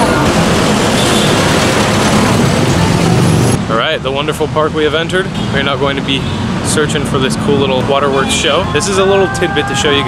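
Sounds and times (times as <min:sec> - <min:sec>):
city street traffic: 0:00.0 - 0:10.0
man speaking: 0:03.6 - 0:10.0.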